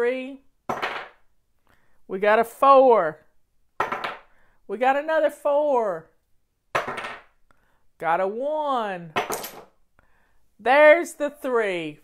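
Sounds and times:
die clattering on wooden table: 0.7s - 1.2s, 3.8s - 4.3s, 6.7s - 7.3s, 9.2s - 9.7s.

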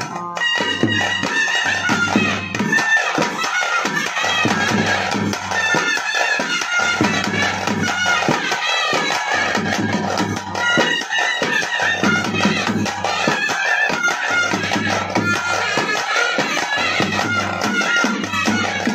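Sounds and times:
reed wind instrument melody: 0.0s - 18.9s
rhythmic drumming: 0.0s - 18.9s.

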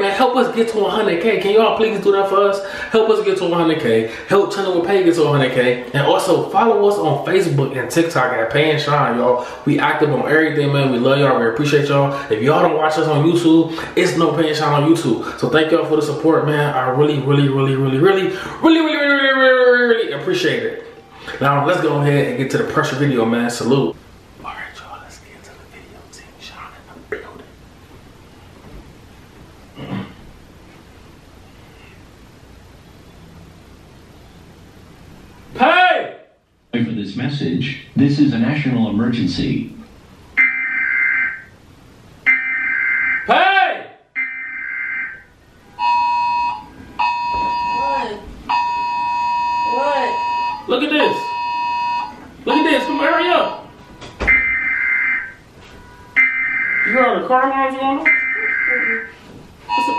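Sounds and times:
person whispering: 24.4s - 27.5s
buzzy electronic warble bursts: 58.0s - 59.9s.

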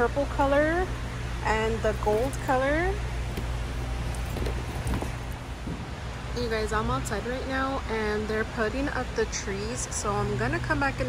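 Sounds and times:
low machine hum: 0.0s - 11.0s
cardboard boxes clicking and rustling: 3.3s - 5.8s.

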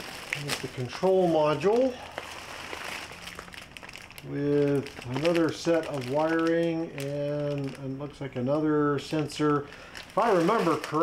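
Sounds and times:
plastic bags rustling: 0.0s - 11.0s.

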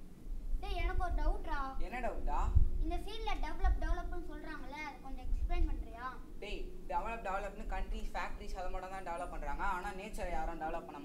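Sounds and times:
child speaking: 0.6s - 1.8s, 2.8s - 6.3s.

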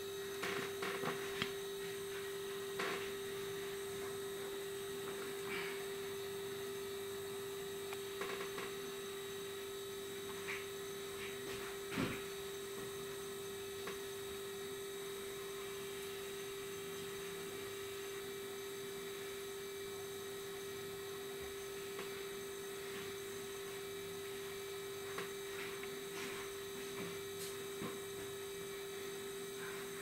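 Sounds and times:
steady hum: 0.0s - 30.0s.

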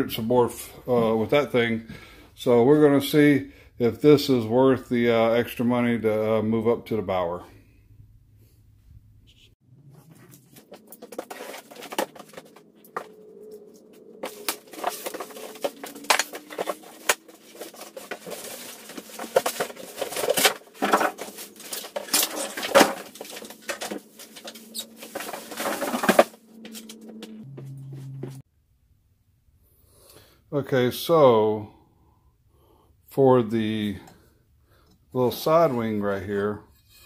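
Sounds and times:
cardboard box scraping and rustling: 10.0s - 13.1s, 14.2s - 27.1s
foam squeaking against cardboard: 21.5s - 26.0s.

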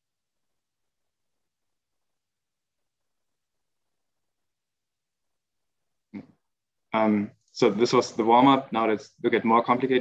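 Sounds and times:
man talking: 6.2s - 10.0s.

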